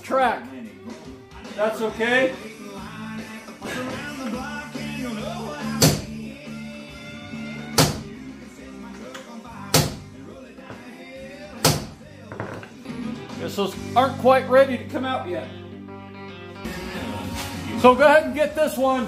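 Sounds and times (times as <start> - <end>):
country music on radio: 0.0 - 19.0.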